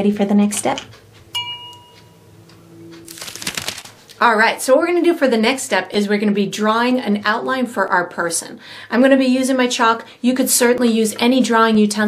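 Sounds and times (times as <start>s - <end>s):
light ringing clink: 1.3s - 2.2s.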